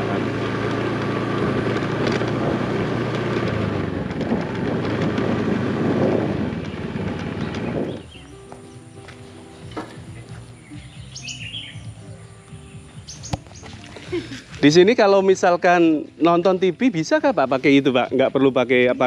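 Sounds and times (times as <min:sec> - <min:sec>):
wind and road noise: 0:00.0 - 0:15.2
motorbike engine running: 0:00.0 - 0:15.4
birds chirping: 0:05.4 - 0:19.0.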